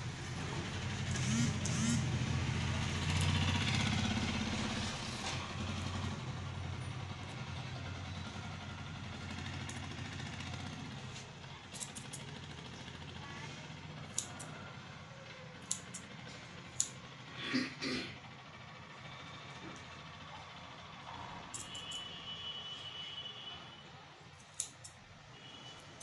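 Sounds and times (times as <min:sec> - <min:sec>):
vehicle engine rumble: 0:00.0 - 0:22.2
scissors snipping hair: 0:11.7 - 0:12.3, 0:14.1 - 0:14.6, 0:15.6 - 0:16.1, 0:16.7 - 0:17.0, 0:21.5 - 0:22.0, 0:24.4 - 0:25.0.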